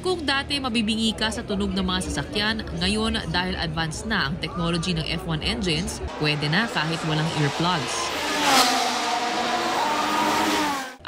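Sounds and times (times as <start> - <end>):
racing car engine at high revs: 6.1 - 11.0.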